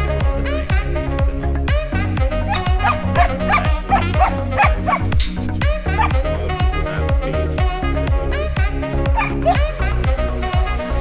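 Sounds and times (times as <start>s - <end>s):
background music with steady beat: 0.0s - 11.0s
dog barking in short yips: 2.5s - 5.4s, 9.2s - 9.6s.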